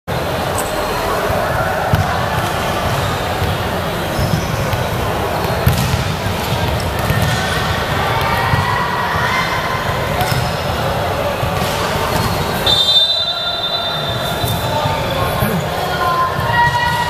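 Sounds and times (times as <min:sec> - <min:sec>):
murmur of voices: 0:00.1 - 0:17.0
ball bouncing on wooden floor: 0:05.6 - 0:06.0.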